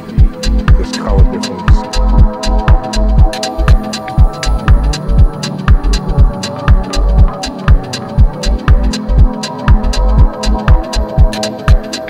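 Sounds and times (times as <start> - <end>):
hi-hat ticks: 0.0 - 12.0
kick drum: 0.0 - 12.0
sustained chord tones: 0.0 - 12.0
deep bass: 0.2 - 11.4.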